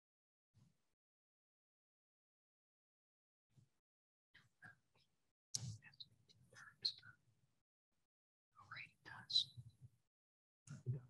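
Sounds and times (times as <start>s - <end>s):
faint whispered speech: 5.6s - 7.2s, 8.6s - 9.6s.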